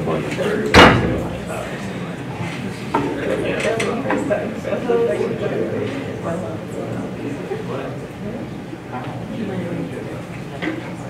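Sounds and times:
murmur of voices: 0.0s - 11.0s
loud bang with ring-out: 0.8s - 1.4s.

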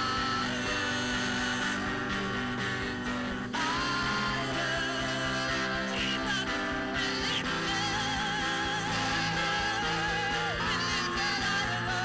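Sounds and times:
band sustained chords: 0.0s - 12.0s
person singing a long note: 0.0s - 12.0s.

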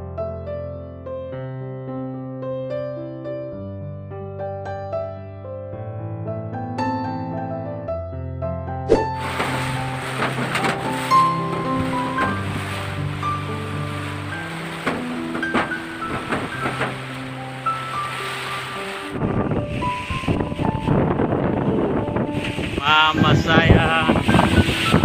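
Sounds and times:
sustained piano-like music: 0.0s - 25.0s
storm wind buffeting microphone: 9.1s - 25.0s.

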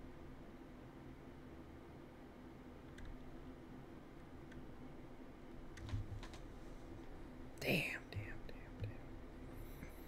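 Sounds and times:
faint clicks: 2.9s - 3.3s.

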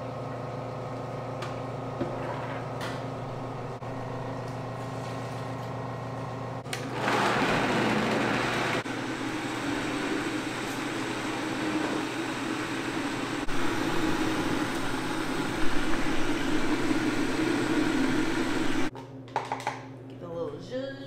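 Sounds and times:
juicer motor running: 3.6s - 18.9s.

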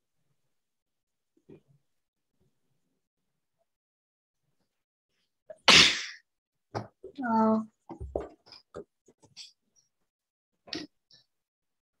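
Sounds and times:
person sneezing: 5.5s - 6.2s.

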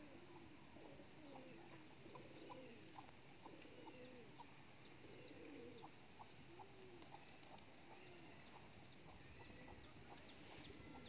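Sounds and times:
dove cooing: 0.0s - 11.0s.

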